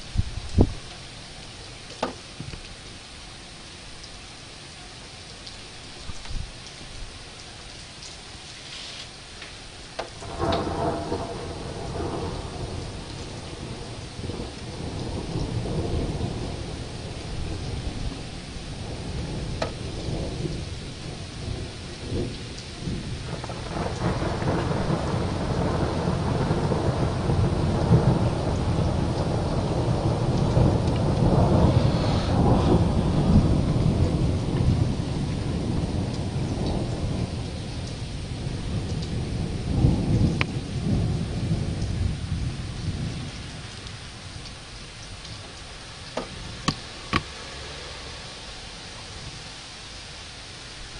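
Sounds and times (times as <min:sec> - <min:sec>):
thunder rumbling: 0:00.0 - 0:01.1, 0:10.0 - 0:50.9
steady rain: 0:00.0 - 0:50.9.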